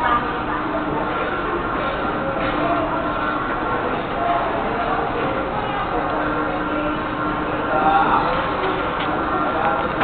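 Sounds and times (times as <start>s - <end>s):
carousel mechanical rumble: 0.0s - 10.0s.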